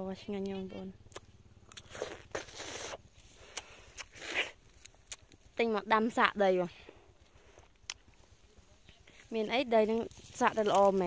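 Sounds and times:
leafy branches rustling: 7.1s - 11.0s.

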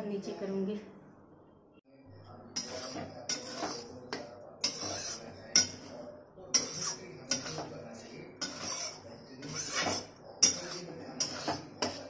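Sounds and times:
metal spoon scraping a pan: 2.4s - 12.0s.

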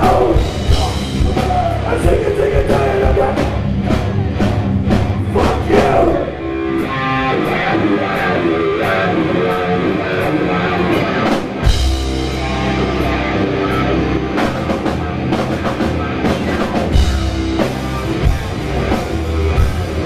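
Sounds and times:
bass guitar: 0.0s - 20.0s
distorted electric guitar lead: 0.0s - 20.0s
drum kit: 0.0s - 20.0s.

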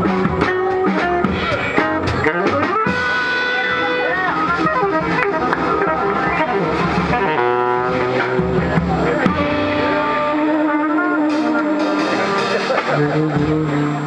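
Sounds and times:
double bass: 0.0s - 14.0s
drums: 0.0s - 14.0s
saxophone: 0.0s - 14.0s
trumpet: 0.0s - 14.0s.

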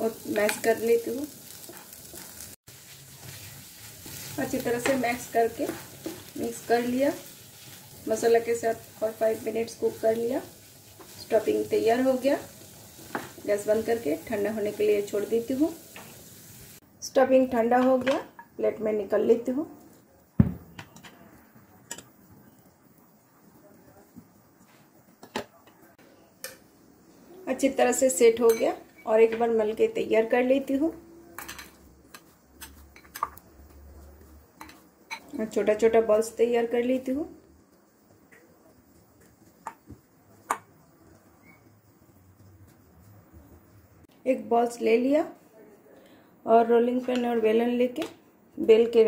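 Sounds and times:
spatula stirring and mashing: 0.0s - 16.3s, 36.8s - 44.0s
stuffing sizzling in oil: 0.0s - 20.2s, 26.4s - 45.4s
spatula scraping: 1.4s - 8.0s.

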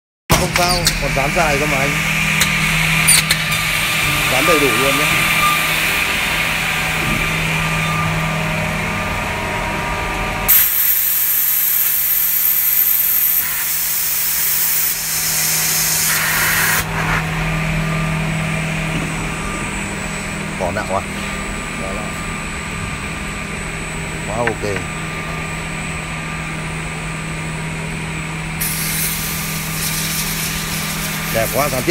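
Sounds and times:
edge banding machine humming: 0.3s - 10.5s
machine motor hum with hiss: 0.3s - 31.9s.

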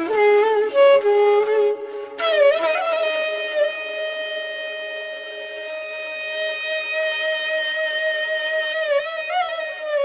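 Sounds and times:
flute holding long note: 0.0s - 10.0s
lower sustained note: 1.5s - 10.0s.

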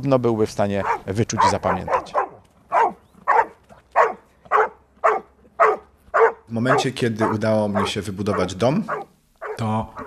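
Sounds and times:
dog barking: 0.8s - 10.0s.

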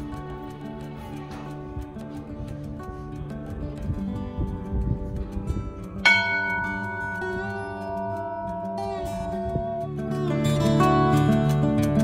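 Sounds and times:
bell-like note ringing: 6.0s - 10.1s
soft sustained notes: 6.1s - 11.3s.

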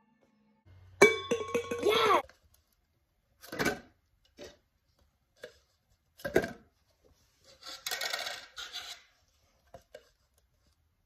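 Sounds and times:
plastic cups clattering: 3.4s - 4.7s, 5.3s - 10.4s.

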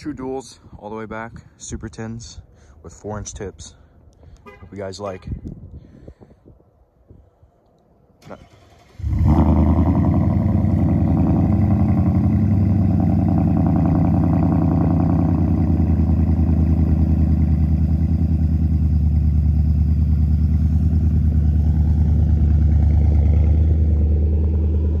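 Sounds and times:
engine idling with low rumble: 8.2s - 25.0s
truck engine starting: 8.2s - 25.0s.

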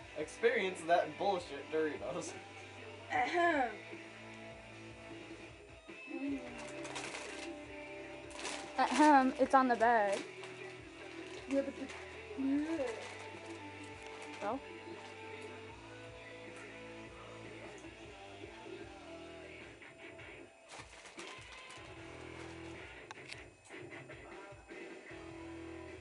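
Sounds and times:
quiet guitar music: 0.0s - 26.0s.

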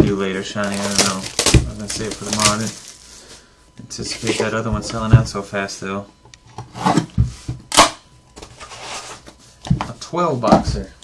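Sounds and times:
cardboard boxes rubbing and scraping: 8.5s - 9.3s.

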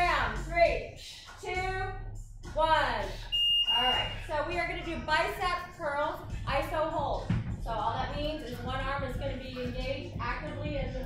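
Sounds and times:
electronic timer beep: 3.3s - 4.3s.

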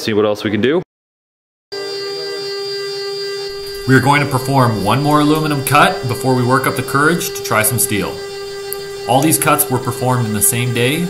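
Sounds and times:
router spindle high whine: 1.7s - 11.0s
end mill cutting aluminium: 1.8s - 11.0s.

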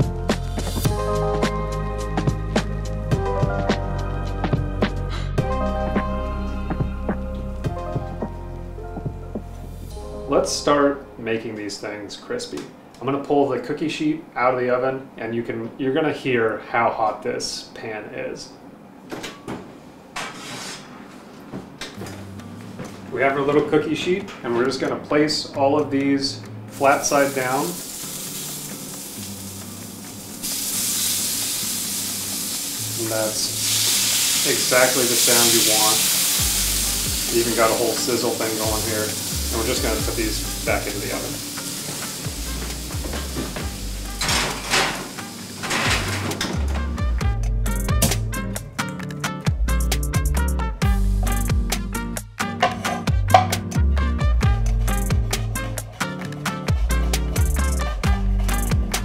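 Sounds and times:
background music: 0.0s - 13.0s, 21.9s - 59.0s
baking sheet scraping: 20.2s - 21.1s
broccoli sizzling on a pan: 26.8s - 44.2s, 44.9s - 45.7s
oven door clicks and clanks: 44.2s - 46.7s.

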